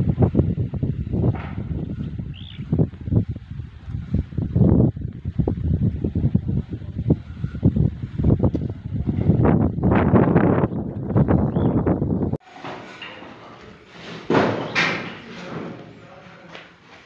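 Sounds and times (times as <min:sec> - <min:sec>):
wind buffeting microphone: 0:00.0 - 0:12.4.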